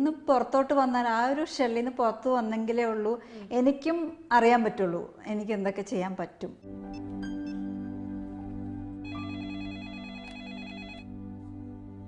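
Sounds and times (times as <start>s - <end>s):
low music drone: 6.7s - 12.0s
telephone ringing electronic warble: 9.1s - 11.1s.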